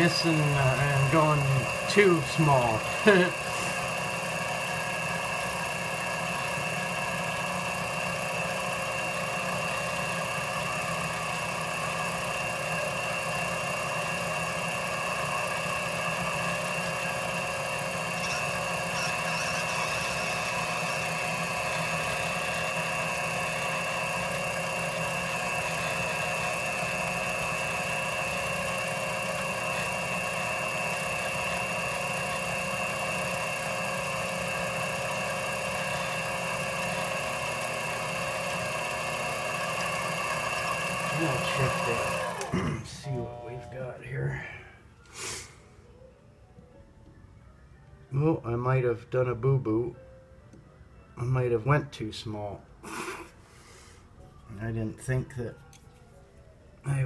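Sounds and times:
metal lathe whining: 0.0 - 44.6.

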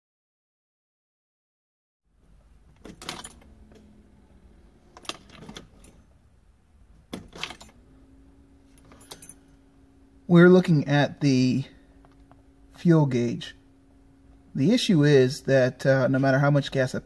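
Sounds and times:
keys jangling: 2.8 - 3.5, 5.0 - 6.1, 7.2 - 7.8, 8.8 - 9.6.

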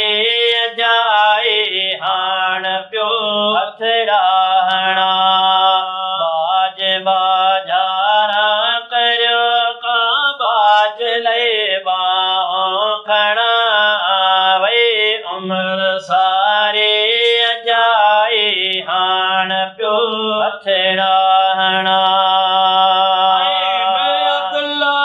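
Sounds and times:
men singing devotional song: 0.0 - 25.0.

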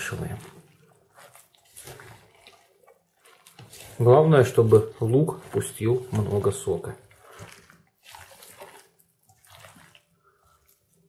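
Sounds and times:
hand kneading meat squelching: 0.0 - 11.0.

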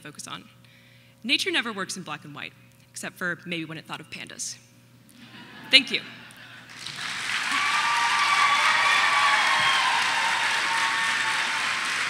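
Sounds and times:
audience applauding: 6.7 - 12.0.

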